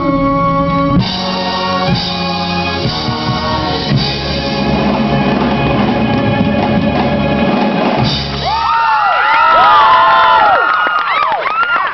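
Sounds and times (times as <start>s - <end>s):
audience cheering: 8.2s - 11.9s
high-pitched whoops and screams: 8.4s - 11.9s.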